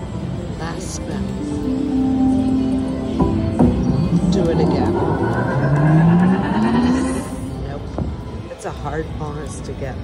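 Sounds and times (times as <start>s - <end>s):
slot machine tone rising in pitch: 4.2s - 7.5s.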